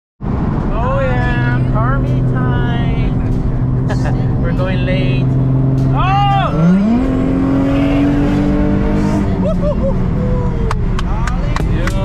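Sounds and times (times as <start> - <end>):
car engine running inside cabin: 0.2 - 12.0.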